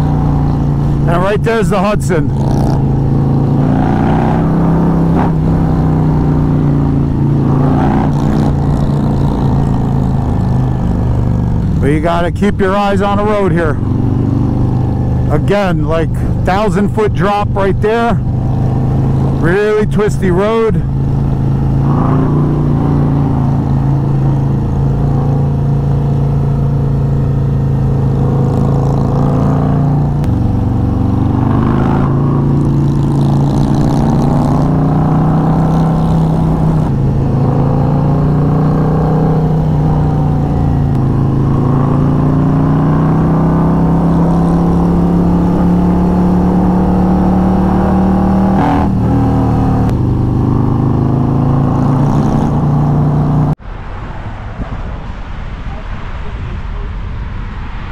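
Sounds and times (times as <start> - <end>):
motorcycle engine running: 0.0 - 53.6.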